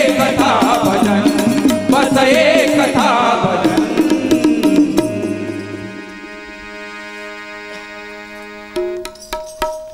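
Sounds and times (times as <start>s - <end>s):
harmonium holding a chord: 0.0s - 9.2s.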